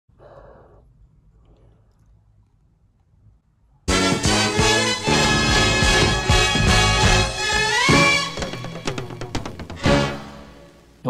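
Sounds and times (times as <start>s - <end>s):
faint low hum: 0.1s - 3.9s
loud music: 3.9s - 10.7s.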